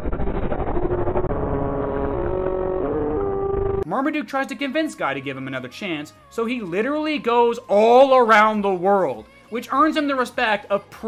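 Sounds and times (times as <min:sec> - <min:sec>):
dense low rumble: 0:00.0 - 0:03.8.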